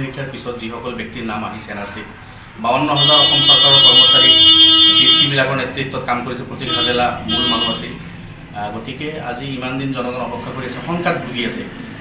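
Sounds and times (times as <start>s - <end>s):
man speaking: 0.0s - 11.8s.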